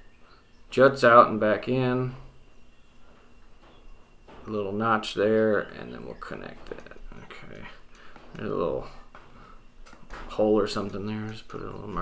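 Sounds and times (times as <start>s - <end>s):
faint steady high hum: 0.0s - 12.0s
man's voice: 10.3s - 12.0s.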